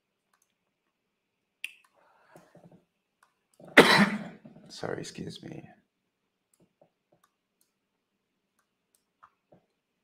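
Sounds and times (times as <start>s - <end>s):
man coughing: 3.7s - 4.4s.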